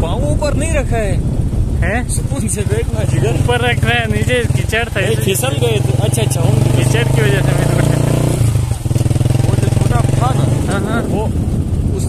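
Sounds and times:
motorcycle engine running: 0.0 - 12.0
person talking: 2.5 - 8.1.

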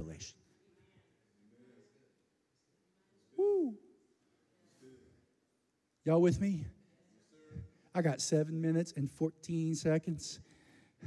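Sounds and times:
person singing ooh: 3.4 - 3.9.

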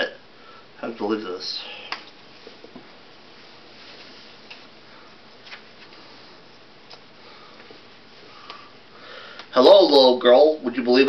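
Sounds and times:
faint room hiss: 0.0 - 11.0
soft clicks and rustles: 3.7 - 8.6.

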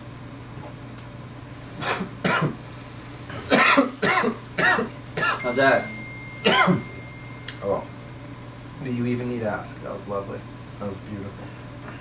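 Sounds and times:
man coughing hard: 1.8 - 2.6, 3.3 - 5.5, 6.4 - 6.9.

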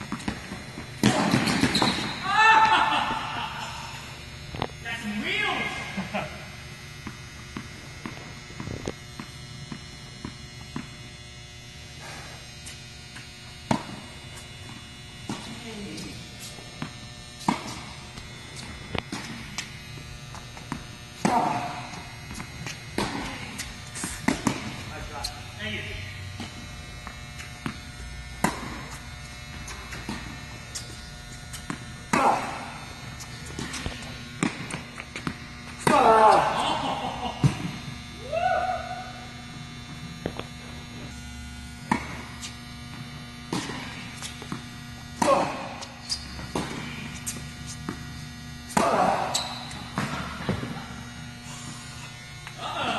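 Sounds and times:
tennis balls bouncing on court: 0.0 - 2.8, 7.0 - 11.0, 13.7 - 16.1, 16.8 - 25.3, 26.4 - 36.5, 41.8 - 51.1
steady hum: 0.0 - 52.9
tennis balls struck by rackets: 0.1 - 2.2, 13.7 - 14.0, 16.8 - 19.8, 20.6 - 25.3, 26.4 - 29.0, 29.6 - 36.5, 41.8 - 48.1, 48.7 - 51.0.

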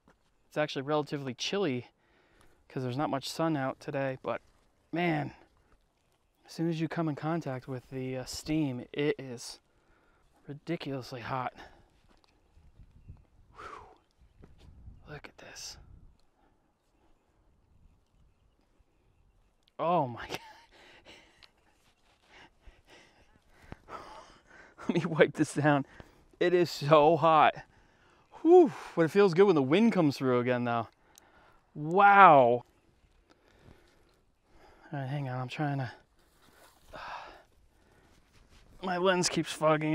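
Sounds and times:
footsteps on dirt path: 4.4 - 6.5, 11.6 - 13.4, 20.8 - 24.2, 36.1 - 39.1
man's voice: 38.8 - 39.9.

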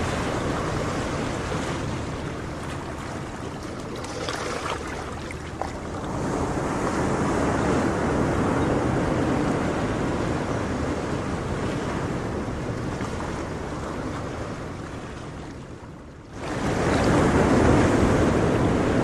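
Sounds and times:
sea waves washing on shore: 0.0 - 19.0.

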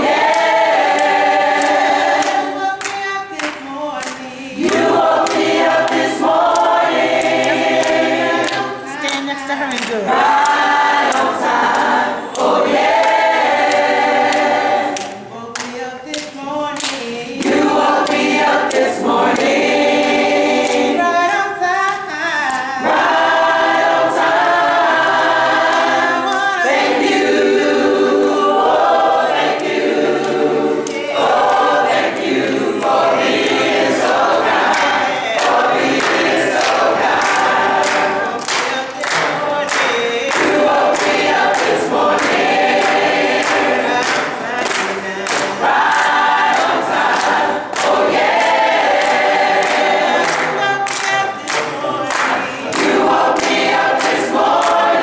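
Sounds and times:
choir singing a cappella: 0.0 - 55.0.

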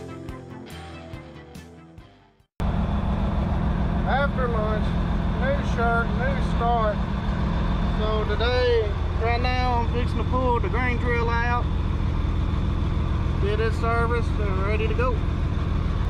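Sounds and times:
music: 0.0 - 2.5
tractor diesel engine droning: 2.6 - 16.0.

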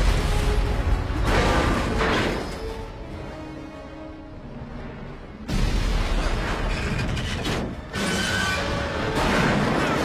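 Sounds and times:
explosions rumbling and crashing: 0.0 - 2.6, 5.5 - 7.9
dramatic film score: 0.0 - 10.0.

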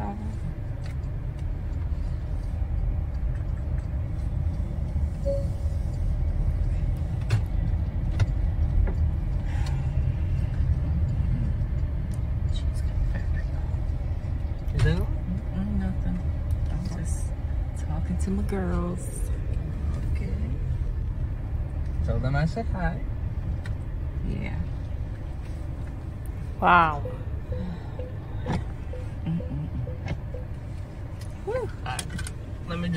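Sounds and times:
car cabin rumble: 0.0 - 32.9.

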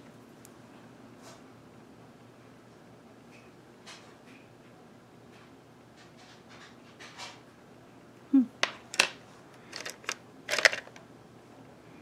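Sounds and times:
person murmuring hmm: 8.3 - 8.6.

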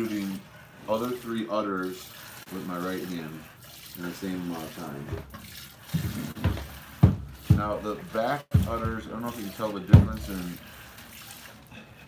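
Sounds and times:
milk squirting into plastic bucket: 0.0 - 11.7.

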